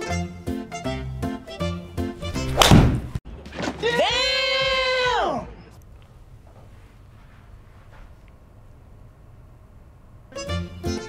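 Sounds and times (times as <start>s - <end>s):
background music: 0.0s - 4.3s, 10.3s - 11.0s
golf club striking ball: 2.2s - 3.2s.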